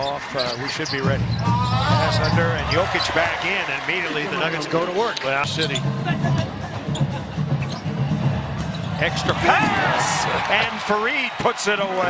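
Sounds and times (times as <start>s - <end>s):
arena crowd noise: 0.0s - 12.0s.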